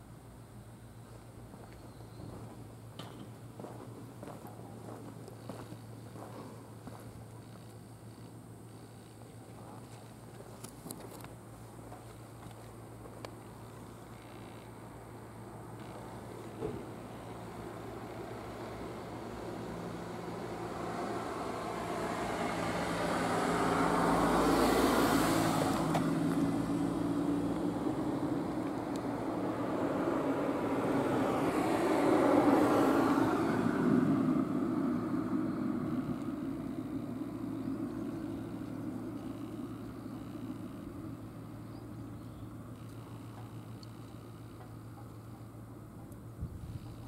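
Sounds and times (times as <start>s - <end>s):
vehicles passing: 0.7s - 47.0s.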